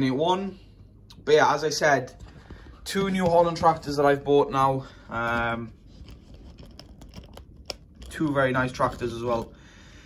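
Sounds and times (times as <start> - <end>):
light scratching: 2.1 - 9.5.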